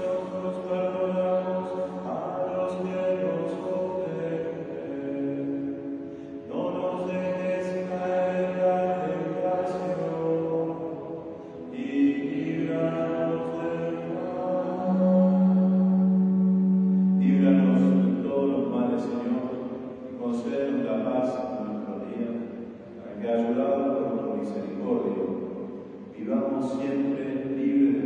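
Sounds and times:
priest chanting a prayer: 0.0s - 28.0s.

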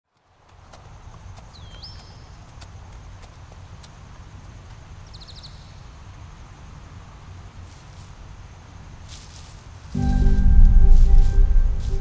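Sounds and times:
bird chirping: 1.5s - 2.4s, 5.0s - 5.9s
low rumble: 10.0s - 12.0s.

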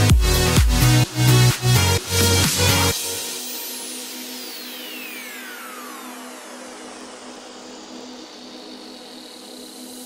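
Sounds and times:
falling pitch glides: 4.4s - 10.0s.

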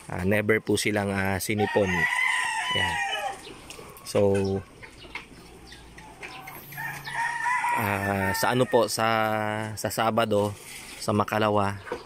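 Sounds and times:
chickens clucking: 0.7s - 12.0s.

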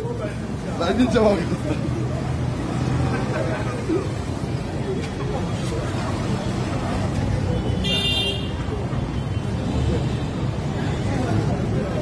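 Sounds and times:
crowd voices: 0.0s - 12.0s
street traffic: 0.0s - 12.0s.

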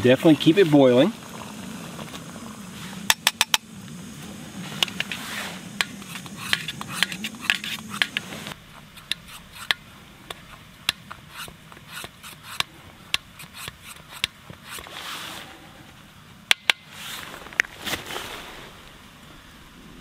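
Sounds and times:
water boiling: 0.0s - 8.6s
stove burner rushing: 0.6s - 9.7s.

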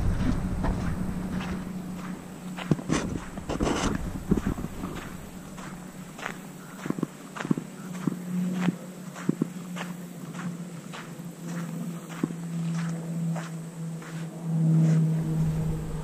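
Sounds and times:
footsteps on sand: 0.0s - 16.0s
steady low hum: 0.0s - 16.0s.

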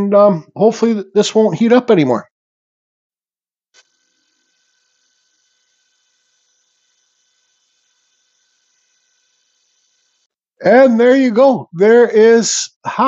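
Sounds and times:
rotary tool whining: 3.7s - 10.6s.

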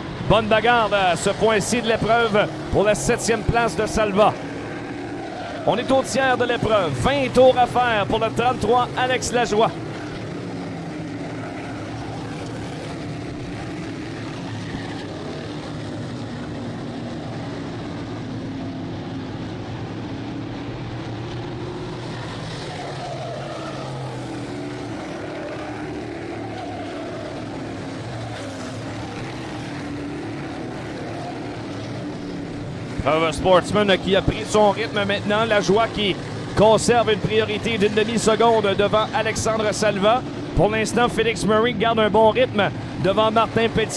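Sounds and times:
race car engines droning: 0.0s - 43.9s.

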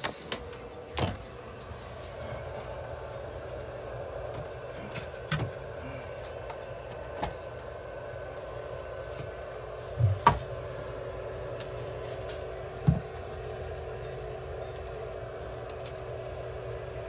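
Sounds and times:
equipment humming: 0.0s - 17.0s.

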